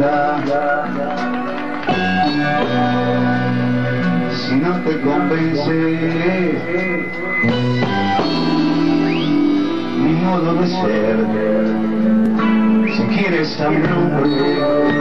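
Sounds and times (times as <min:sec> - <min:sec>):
live band with lead guitar: 0:00.0 - 0:15.0.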